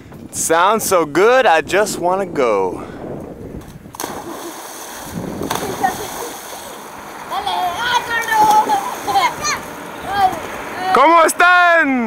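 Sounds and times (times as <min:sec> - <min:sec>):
water splashing and churning: 0:00.7 - 0:12.0
children shouting: 0:07.2 - 0:11.0.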